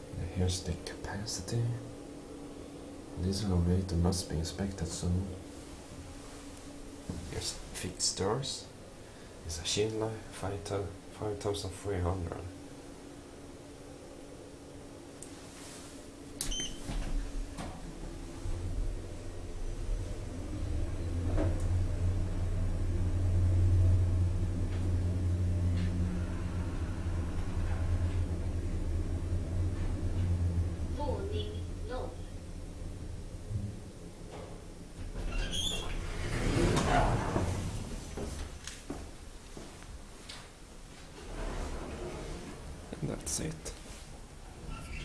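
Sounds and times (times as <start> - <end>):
elevator low rumble: 0.0 - 45.0
steady low hum: 0.0 - 45.0
elevator door squeak: 16.4 - 17.2, 35.2 - 37.8, 44.6 - 45.0.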